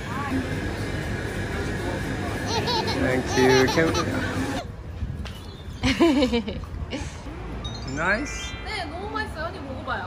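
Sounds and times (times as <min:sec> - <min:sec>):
shop ambience: 0:00.0 - 0:05.8, 0:06.6 - 0:10.0
street traffic rumble: 0:00.0 - 0:10.0.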